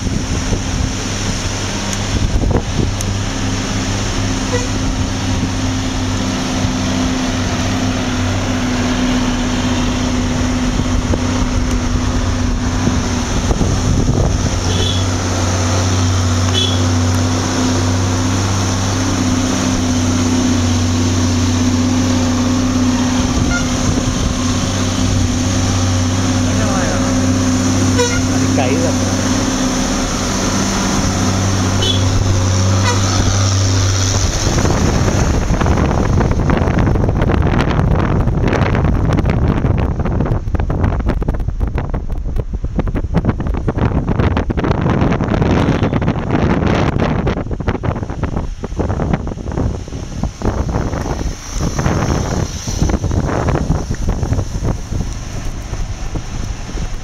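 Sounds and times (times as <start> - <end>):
road and wind noise: 0.0 - 57.0
vehicle engine humming: 0.0 - 57.0.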